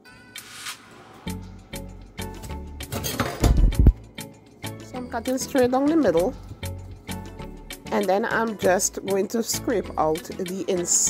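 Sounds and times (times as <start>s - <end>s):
utensils clinking on cutting board: 2.9s - 3.6s.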